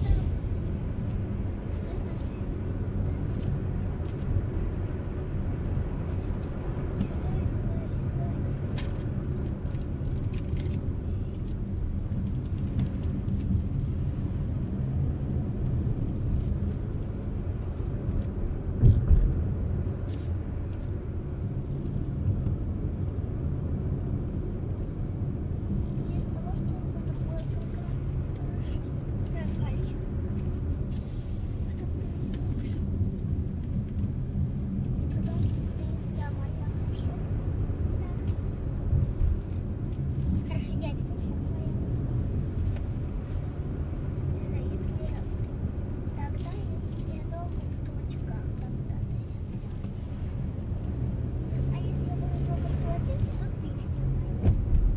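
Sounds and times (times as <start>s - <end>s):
car engine and tyre rumble: 0.0s - 54.9s.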